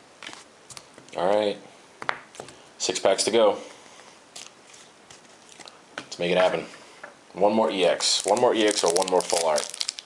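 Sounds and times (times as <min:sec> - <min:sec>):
foil pack crinkling: 0:08.0 - 0:10.0.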